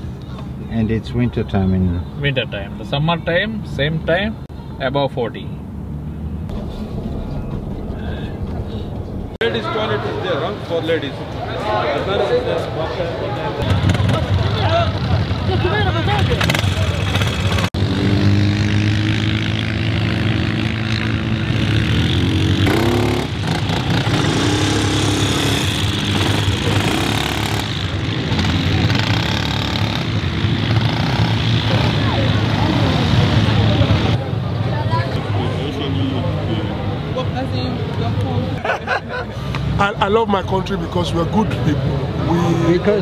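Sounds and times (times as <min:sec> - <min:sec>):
quad bike engines running: 0:13.6 - 0:37.0
engine revving: 0:16.1 - 0:34.2.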